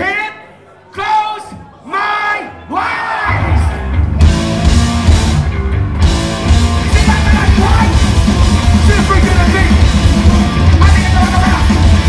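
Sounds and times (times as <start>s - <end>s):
shouted vocals: 1.4s - 4.0s
punk band playing live: 3.3s - 12.0s.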